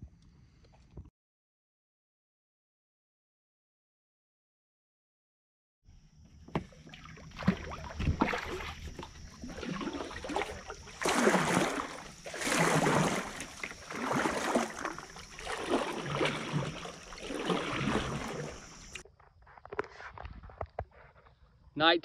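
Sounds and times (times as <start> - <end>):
paddle knocking: 6.4 - 19.0
paddle splashes in water: 6.5 - 19.0.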